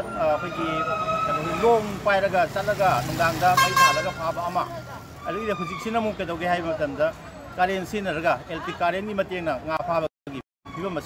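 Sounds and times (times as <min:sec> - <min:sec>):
vehicle horns: 0:03.3 - 0:04.6.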